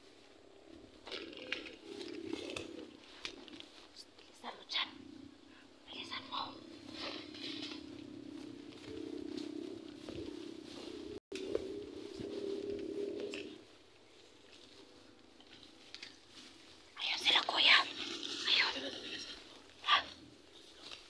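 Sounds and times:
person whispering: 0:05.8 - 0:07.2, 0:17.0 - 0:20.2.

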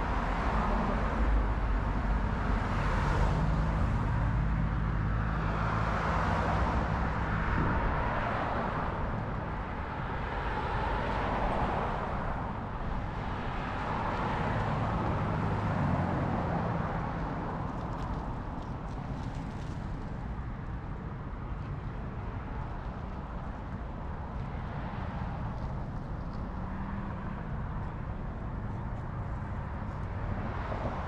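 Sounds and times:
cars driving past: 0:00.0 - 0:31.0.

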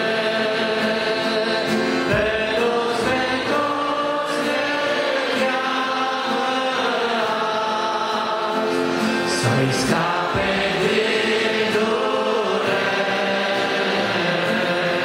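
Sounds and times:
acoustic guitar: 0:00.0 - 0:15.0
men singing a hymn: 0:00.0 - 0:15.0.

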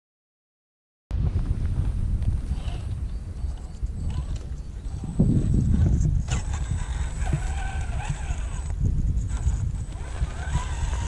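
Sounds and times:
steady low rumble: 0:01.1 - 0:11.0
electric motor and gearbox whining: 0:01.8 - 0:11.0.

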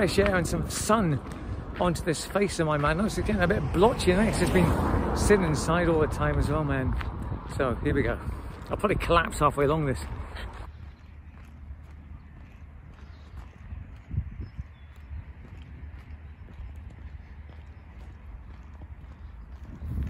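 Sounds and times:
footsteps on paved path: 0:00.0 - 0:20.0.

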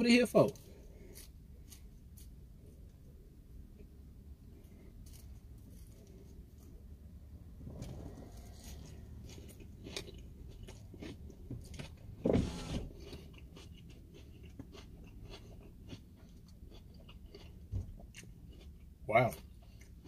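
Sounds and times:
crunchy chewing: 0:00.4 - 0:03.0, 0:04.6 - 0:07.0, 0:07.7 - 0:20.0.

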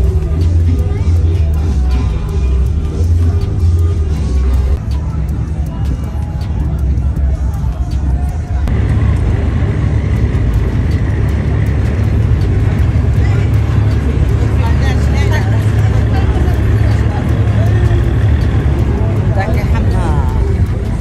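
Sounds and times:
people talking: 0:00.0 - 0:09.8, 0:11.8 - 0:21.0
boat engine humming: 0:00.0 - 0:21.0.

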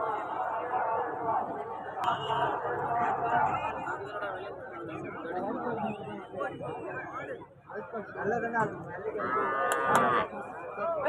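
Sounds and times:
cow mooing: 0:09.2 - 0:10.3.

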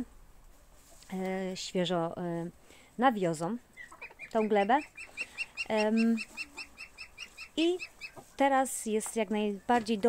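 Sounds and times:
bird chirping rapidly: 0:03.7 - 0:08.2.

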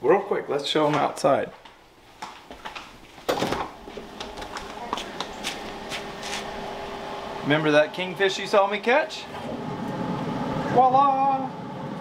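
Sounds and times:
steady low hum: 0:02.8 - 0:12.0.

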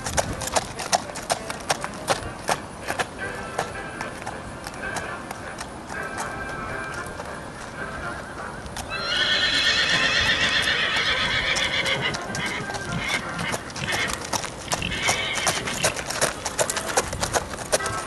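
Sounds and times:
hoofbeats on gravel: 0:00.0 - 0:18.0
horse whinnying: 0:08.8 - 0:16.1.

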